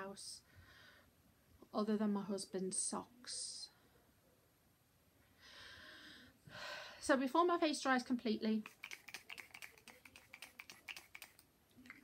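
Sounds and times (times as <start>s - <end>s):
spray bottle spritzing: 8.6s - 12.0s.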